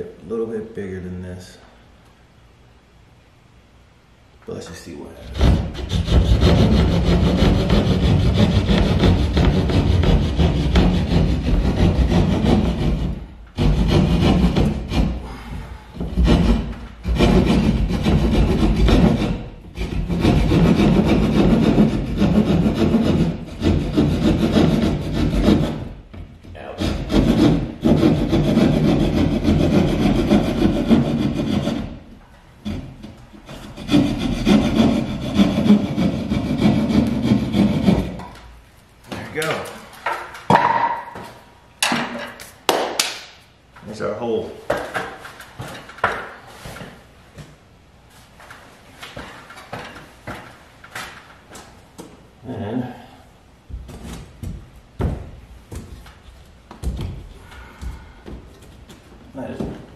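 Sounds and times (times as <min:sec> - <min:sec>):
jab saw sawing: 0:05.2 - 0:15.2, 0:16.2 - 0:25.9, 0:26.7 - 0:32.0, 0:32.6 - 0:38.2.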